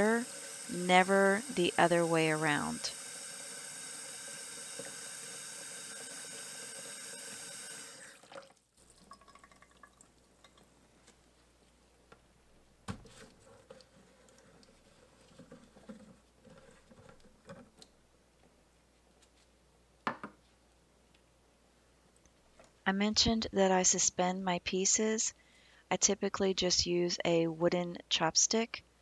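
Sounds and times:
faucet running water into pot: 0.0s - 10.6s.

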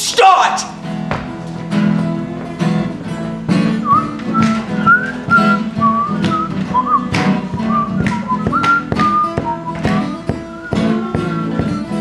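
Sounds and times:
acoustic guitar strummed: 0.6s - 12.0s
whistled tune: 3.7s - 12.0s.

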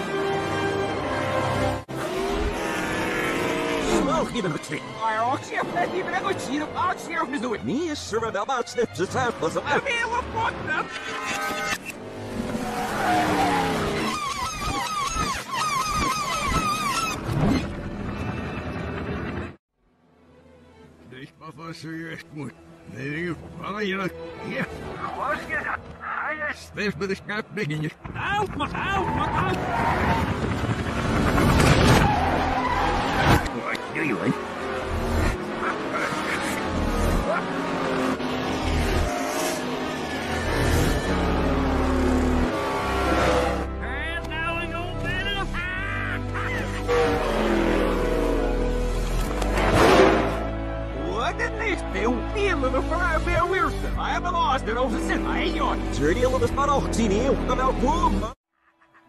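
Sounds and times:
reversed soundtrack music: 0.0s - 14.4s, 28.8s - 59.0s
reversed tyre squeals: 10.7s - 19.0s, 28.9s - 43.7s.

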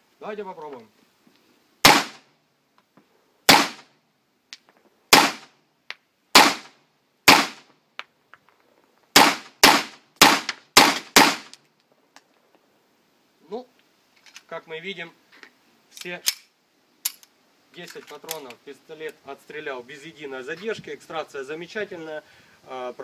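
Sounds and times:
blank pistol shots: 1.8s - 2.2s, 3.5s - 3.9s, 5.1s - 5.5s, 6.3s - 7.7s, 9.2s - 11.6s.

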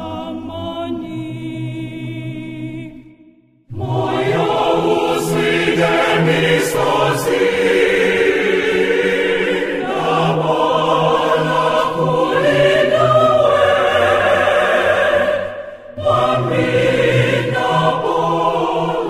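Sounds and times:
choir singing a hymn: 3.7s - 19.0s.

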